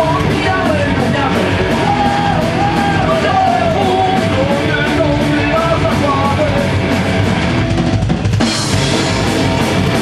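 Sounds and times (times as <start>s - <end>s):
shouted lead vocal: 0.0s - 6.9s
bass guitar: 0.0s - 10.0s
drums: 0.0s - 10.0s
electric guitars: 0.0s - 10.0s.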